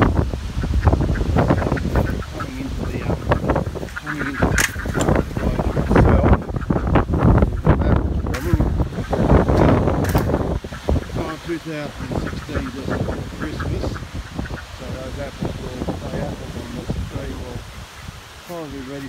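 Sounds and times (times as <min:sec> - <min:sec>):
ducks quacking: 0:00.0 - 0:19.0
wind rumbling on microphone: 0:00.0 - 0:19.0.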